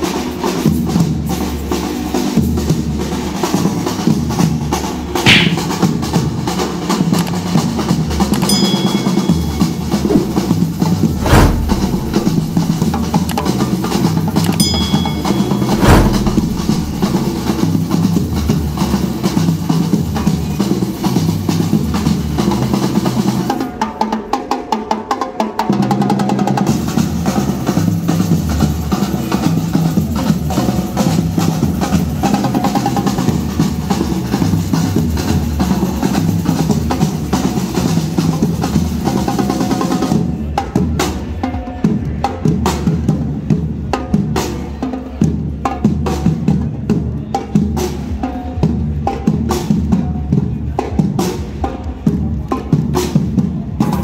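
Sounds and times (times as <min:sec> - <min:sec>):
bass drums struck with mallets: 0:05.3 - 0:05.8, 0:08.5 - 0:12.9, 0:14.6 - 0:17.6
snare drums: 0:05.3 - 0:06.0, 0:09.0 - 0:13.4, 0:14.5 - 0:17.8.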